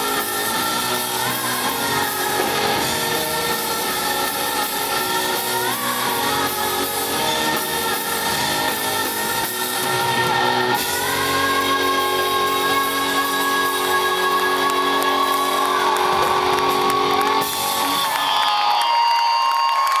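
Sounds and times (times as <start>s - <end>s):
electric guitar: 0.0s - 18.9s
person singing: 0.0s - 19.6s.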